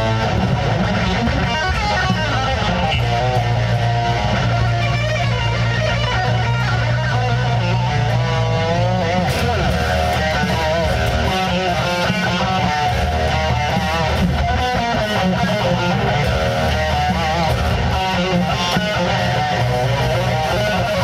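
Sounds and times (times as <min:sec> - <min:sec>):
band backing with bass: 0:00.0 - 0:21.0
electric guitar metal lead: 0:00.0 - 0:21.0.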